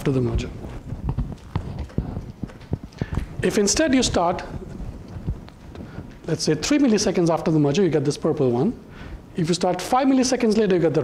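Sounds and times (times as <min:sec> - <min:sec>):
soft low thumps and knocks: 0:00.2 - 0:03.4, 0:04.0 - 0:06.3.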